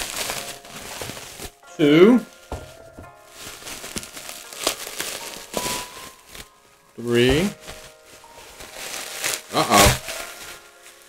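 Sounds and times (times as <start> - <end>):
bubble wrap crinkling: 0.0 - 11.0.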